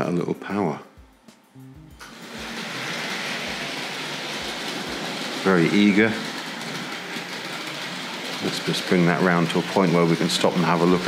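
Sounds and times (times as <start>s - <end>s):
model train running on track: 2.0s - 11.0s.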